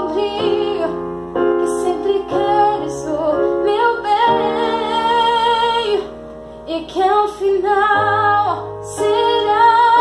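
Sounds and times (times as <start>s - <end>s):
woman singing: 0.0s - 1.0s, 1.6s - 6.1s, 6.7s - 10.0s
digital piano chords: 0.0s - 10.0s.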